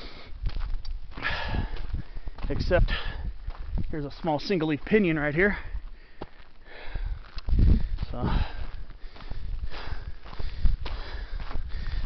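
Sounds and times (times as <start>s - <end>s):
person breathing hard: 0.0s - 0.4s, 1.1s - 3.6s, 5.5s - 12.0s
footsteps on dirt road: 0.0s - 12.0s.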